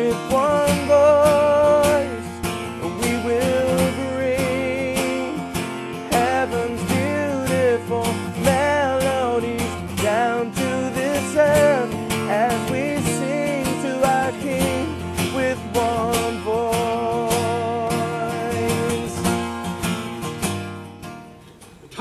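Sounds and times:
strummed acoustic guitar: 0.0 - 22.0.

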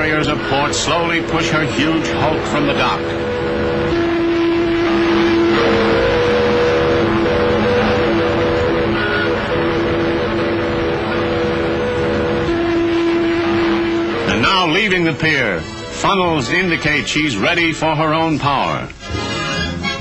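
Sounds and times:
ship whistles low note: 0.0 - 16.6.

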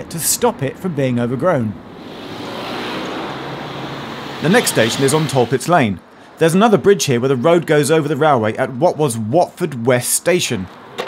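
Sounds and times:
vehicle passing: 0.9 - 5.9.

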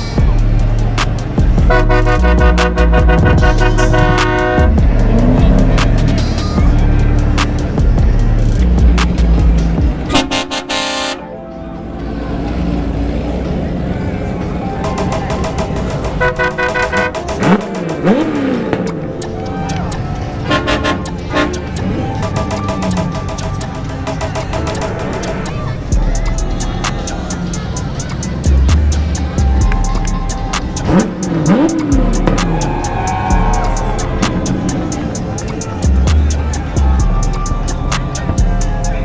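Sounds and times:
bass-heavy music: 0.0 - 39.0
vehicle horns honking: 1.6 - 5.2, 10.0 - 11.5, 14.8 - 18.9, 20.3 - 25.7.

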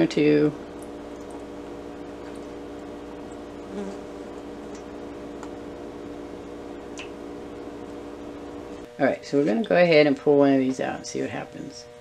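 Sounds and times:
electrical buzzing hum: 0.0 - 12.0.

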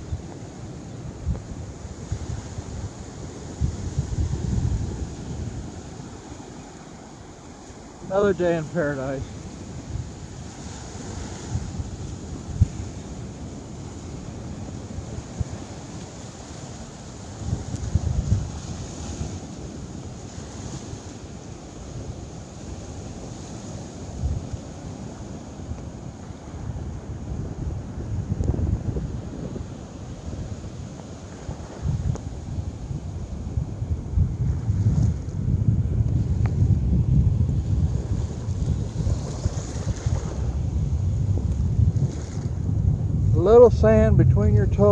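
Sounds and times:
ocean surf washing on beach: 0.0 - 44.9
wind buffeting microphone: 0.0 - 44.9.

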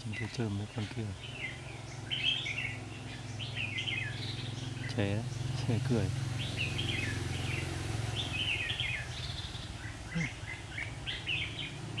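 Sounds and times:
birds singing: 0.0 - 12.0.

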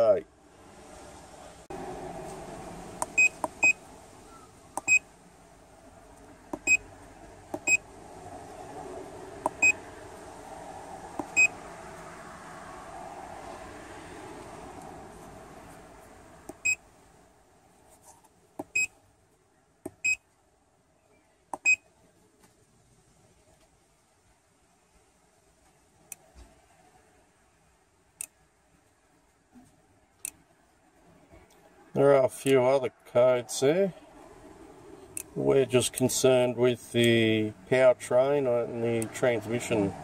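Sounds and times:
scan tool button beeps: 4.8 - 5.0.

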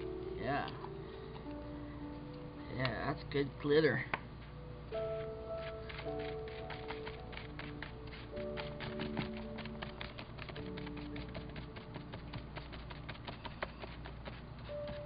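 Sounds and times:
soft background music: 0.0 - 15.0
paintbrush scraping on paper: 5.2 - 15.0.

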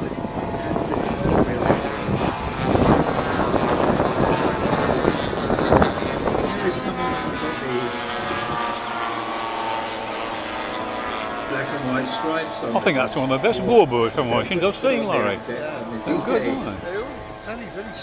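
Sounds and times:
model plane propeller engines droning: 0.0 - 18.0.

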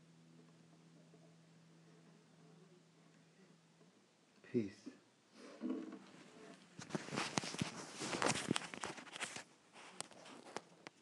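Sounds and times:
rustling handling noise: 6.0 - 11.0.

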